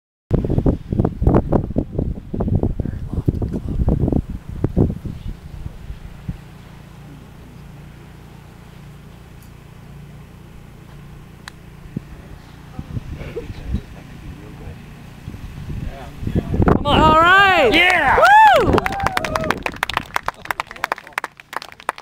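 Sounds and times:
wind buffeting microphone: 0:00.3 - 0:07.9, 0:10.7 - 0:20.9
low steady hum: 0:00.5 - 0:22.0
golf club striking ball: 0:11.4 - 0:11.7.

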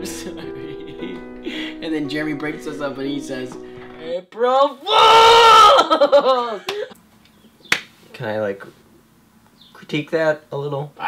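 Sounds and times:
young men laughing: 0:00.0 - 0:03.5, 0:05.5 - 0:07.0
sharp snap: 0:07.7 - 0:07.9.

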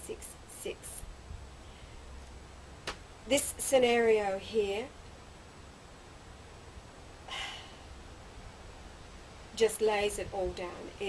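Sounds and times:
faint hiss: 0:00.0 - 0:11.0
low steady hum: 0:00.0 - 0:11.0.

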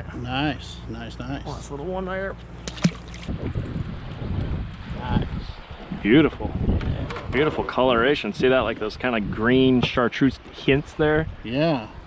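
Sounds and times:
water splashing: 0:02.6 - 0:03.4
wind buffeting microphone: 0:02.8 - 0:12.0.

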